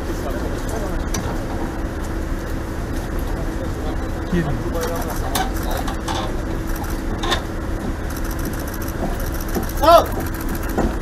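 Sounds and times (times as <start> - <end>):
scattered voices: 3.2 - 7.0, 8.2 - 10.8
boat engine idling: 3.3 - 11.0.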